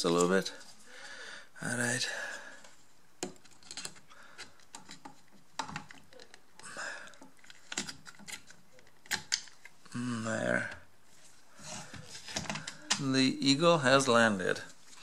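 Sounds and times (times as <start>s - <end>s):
hard plastic parts clicking: 3.2s - 9.8s, 11.9s - 13.1s.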